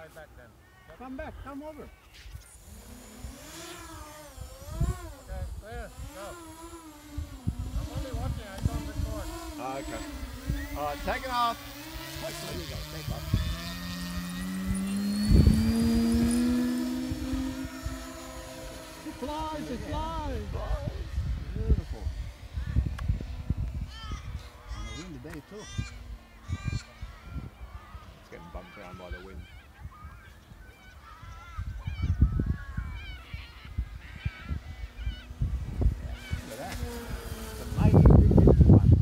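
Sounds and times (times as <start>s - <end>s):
model plane motor droning: 0.9s - 39.0s
wind buffeting microphone: 2.6s - 39.0s
low rumbling: 2.7s - 24.8s.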